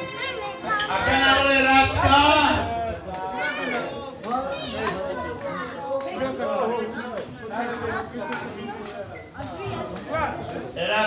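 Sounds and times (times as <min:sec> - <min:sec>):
adult chatter in large hall: 0:00.0 - 0:11.0
children's voices: 0:00.0 - 0:11.0.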